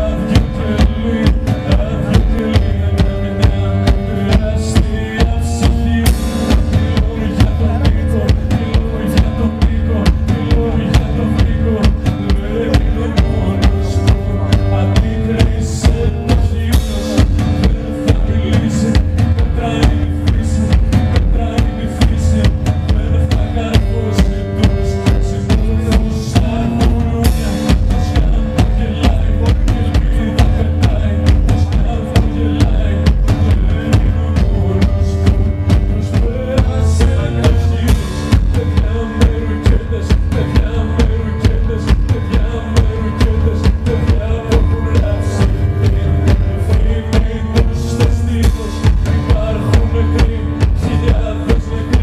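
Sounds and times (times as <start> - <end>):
driving drum beat: 0.0 - 52.0.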